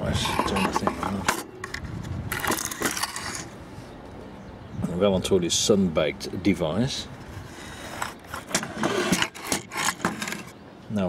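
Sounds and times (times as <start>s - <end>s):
scraping on wooden table: 7.4s - 10.5s.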